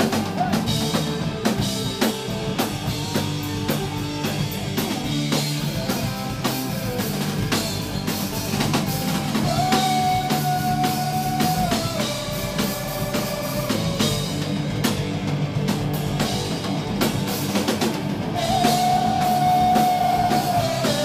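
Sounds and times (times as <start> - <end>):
drum kit: 0.0 - 21.0
electric guitar: 0.0 - 21.0.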